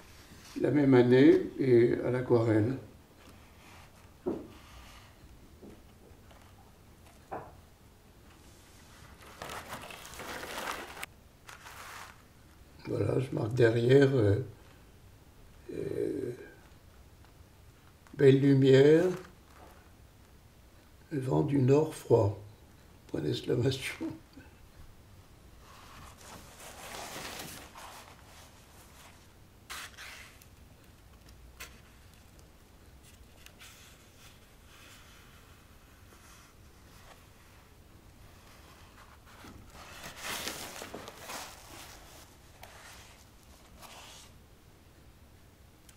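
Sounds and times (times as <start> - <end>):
paper sheets rustling: 8.8 - 12.3, 19.0 - 19.8, 25.7 - 32.4, 38.4 - 44.4
sharp paper crackles: 9.0 - 12.2, 39.3 - 44.2.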